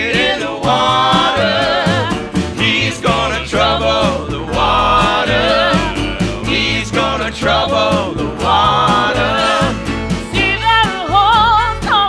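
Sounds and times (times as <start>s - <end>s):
country band playing gospel: 0.0s - 12.0s
low bass notes: 0.0s - 12.0s.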